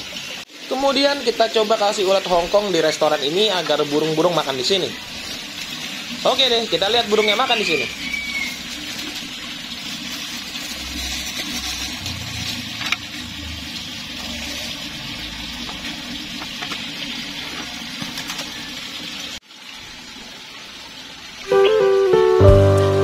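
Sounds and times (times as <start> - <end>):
running water rushing: 0.0 - 23.0.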